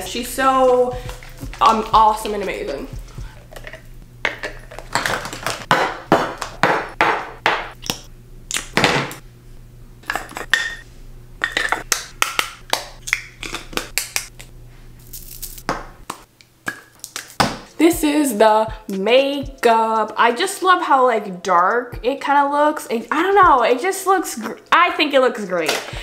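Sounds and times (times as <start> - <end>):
steady low hum: 0.0 - 16.4
small objects clicking and clinking: 15.0 - 15.6.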